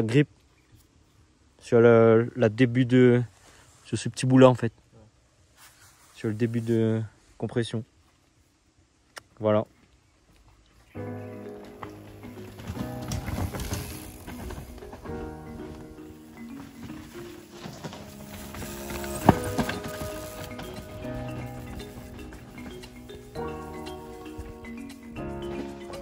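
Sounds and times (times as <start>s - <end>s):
background music: 11.0s - 26.0s
mountain bike rattling on dirt trail: 11.2s - 26.0s.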